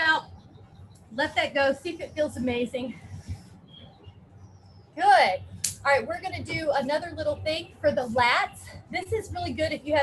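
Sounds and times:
low background hum: 0.0s - 10.0s
bird chirps: 3.6s - 5.0s.

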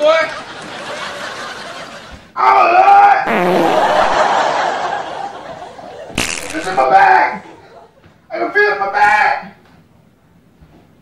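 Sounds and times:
person laughing loudly: 3.3s - 5.4s.

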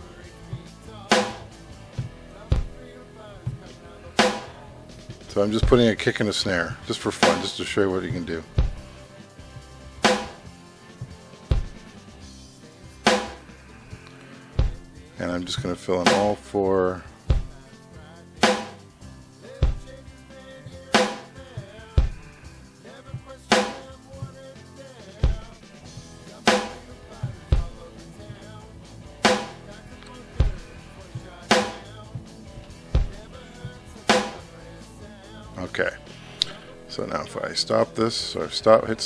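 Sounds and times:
drum machine kick thumps: 0.3s - 6.1s, 7.2s - 16.4s, 17.2s - 17.7s, 18.4s - 18.8s, 19.5s - 34.6s
drum machine snare cracks: 0.5s - 2.8s, 3.5s - 6.1s, 7.2s - 8.9s, 10.0s - 12.0s, 13.0s - 15.0s, 16.0s - 16.4s, 18.4s - 18.8s, 20.9s - 22.4s, 23.2s - 24.5s, 25.2s - 28.6s, 29.2s - 34.5s.

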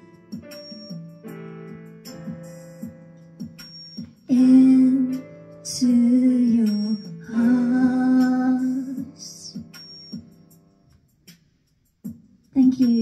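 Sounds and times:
keyboard accompaniment: 0.0s - 13.0s
woman singing a ballad: 4.3s - 9.8s, 12.6s - 13.0s.

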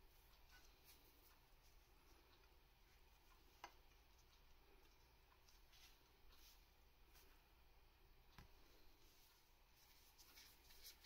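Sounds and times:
gloved hands rustling: 9.1s - 11.0s.

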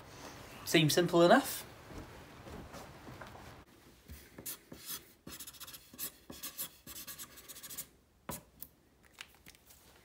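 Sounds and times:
marker scratching on paper: 4.4s - 8.4s.

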